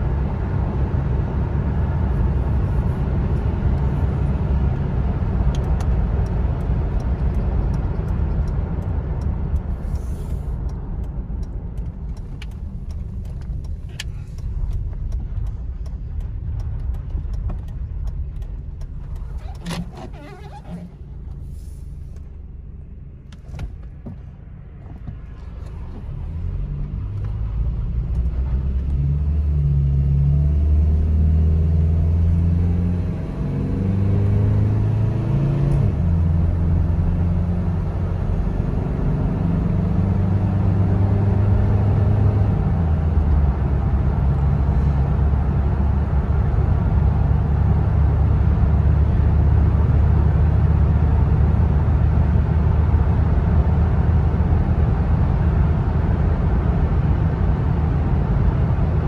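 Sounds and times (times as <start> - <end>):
road noise inside cab: 0.0 - 59.0
truck engine accelerating: 0.0 - 59.0.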